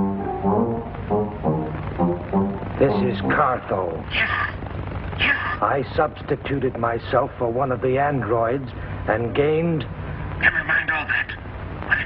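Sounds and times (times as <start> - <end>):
brass instrument held notes: 0.0 - 3.7.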